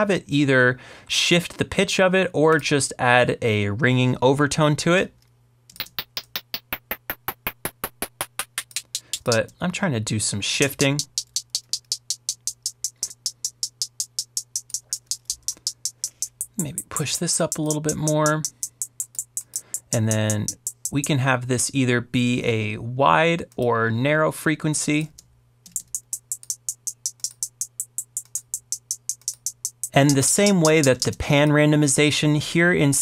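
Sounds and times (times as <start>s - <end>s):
frequency-shifted hi-hat ticking: 5.7s - 9.6s, 10.4s - 21.5s, 25.7s - 32.2s.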